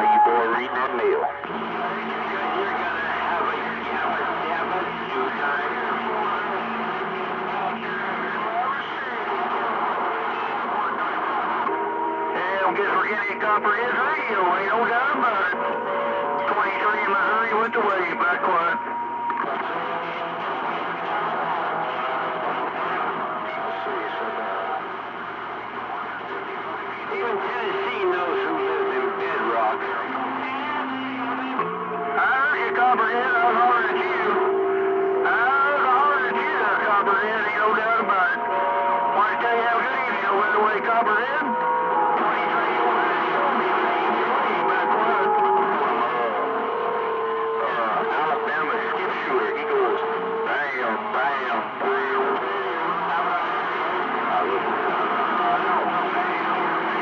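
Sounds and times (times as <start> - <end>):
radio whistling tones: 0.0 - 20.3
garbled radio voices: 0.0 - 57.0.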